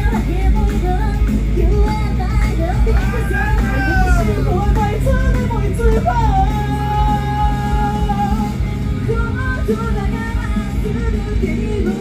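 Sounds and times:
live band accompaniment: 0.0 - 12.0
woman singing into microphone: 0.0 - 12.0.

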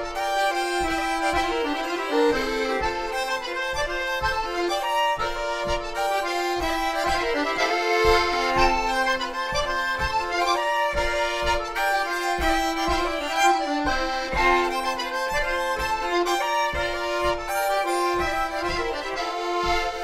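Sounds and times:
fiddle: 0.0 - 20.0
folk dance tune on accordions: 0.0 - 20.0.

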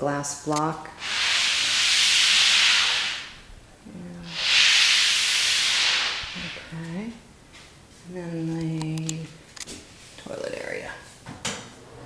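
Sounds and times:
hiss of noise: 0.9 - 6.9.

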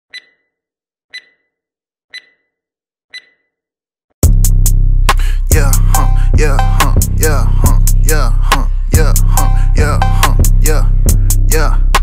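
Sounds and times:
short high-pitched beeps: 0.1 - 3.6.

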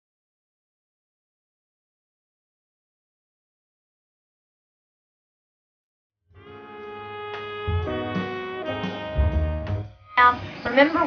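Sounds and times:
instrumental music with bass line: 6.4 - 10.2.

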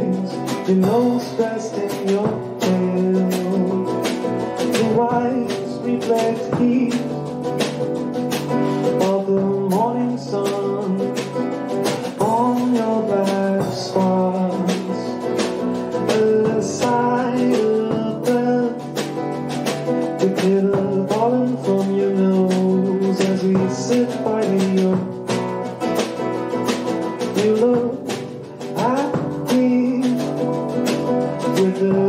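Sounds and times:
nylon-string acoustic guitar: 0.0 - 32.0.

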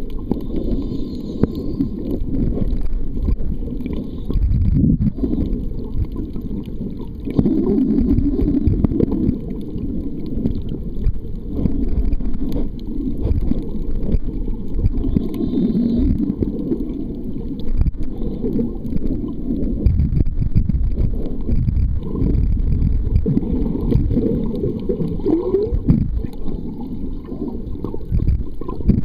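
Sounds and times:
faint clicks: 0.0 - 29.0
underwater water rumble: 0.0 - 29.0.

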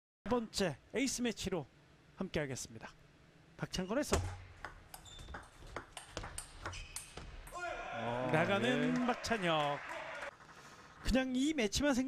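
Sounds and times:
ping pong ball clicking off paddles: 4.2 - 7.6.

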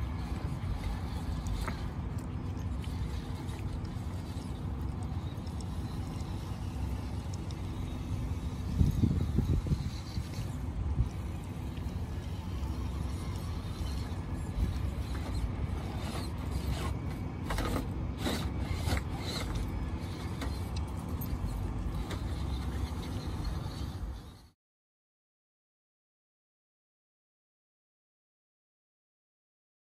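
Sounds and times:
radio-controlled truck motor running: 0.0 - 24.6.

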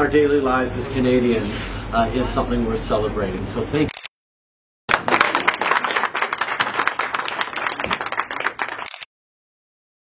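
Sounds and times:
people applauding: 4.9 - 9.1.

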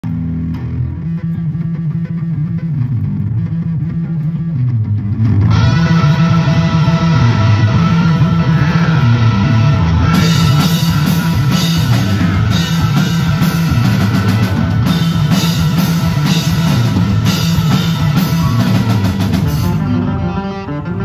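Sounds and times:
bass guitar riff: 0.0 - 21.0
electric guitar: 0.0 - 21.0
drums and cymbals: 5.5 - 20.0.

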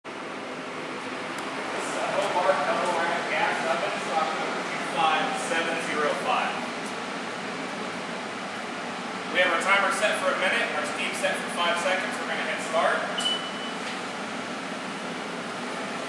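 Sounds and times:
steady rushing noise: 0.5 - 13.0.

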